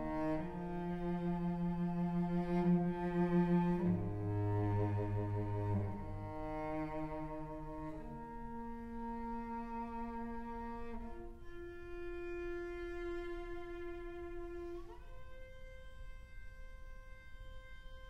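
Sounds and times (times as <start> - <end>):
cello bowed notes: 0.0 - 18.0
upper string instrument bowing: 0.0 - 18.0.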